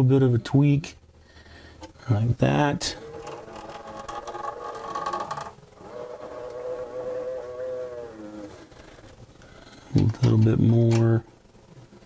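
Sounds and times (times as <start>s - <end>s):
printer bed belt whirring: 3.0s - 8.7s.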